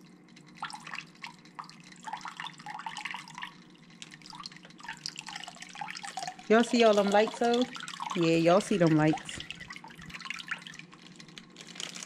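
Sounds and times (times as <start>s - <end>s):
water dripping in aquarium: 0.0s - 11.6s
low steady hum: 0.0s - 12.0s.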